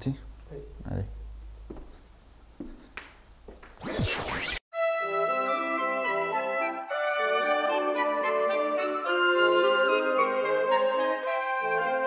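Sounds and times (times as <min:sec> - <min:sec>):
background music with held tones: 0:04.8 - 0:12.0.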